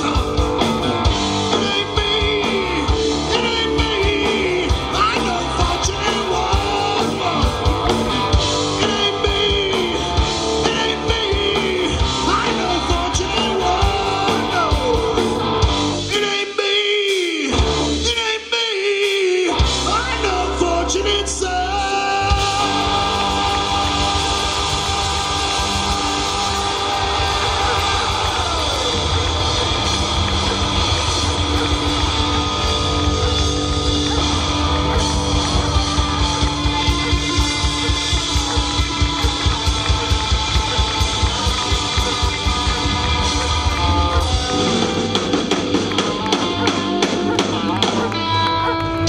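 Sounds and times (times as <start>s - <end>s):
rock band playing: 0.0s - 49.0s.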